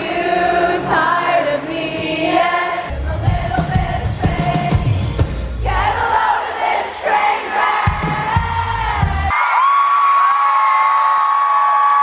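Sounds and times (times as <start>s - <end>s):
crowd cheering and singing: 0.0s - 12.0s.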